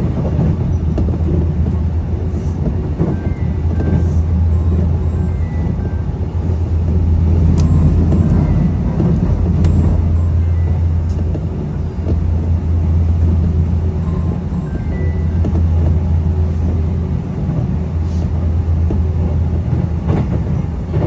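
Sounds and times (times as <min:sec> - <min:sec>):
train rumble inside passenger car: 0:00.0 - 0:21.0.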